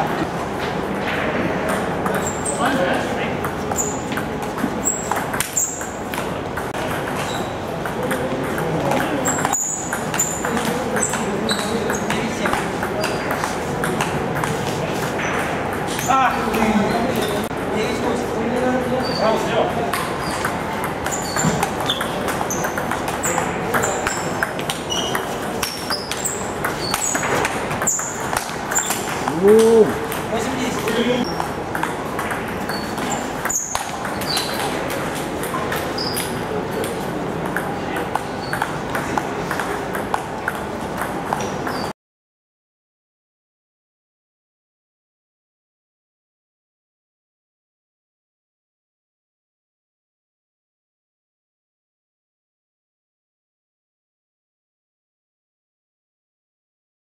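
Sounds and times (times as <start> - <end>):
murmur of voices: 29.0 - 32.6.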